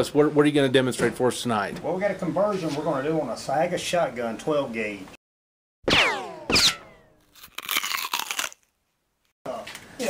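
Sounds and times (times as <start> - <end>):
gunshot cracks with falling whine: 5.9 - 7.0.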